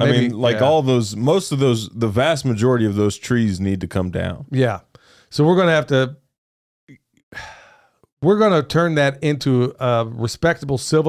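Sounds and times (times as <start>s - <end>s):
man breathing out: 7.3s - 8.0s.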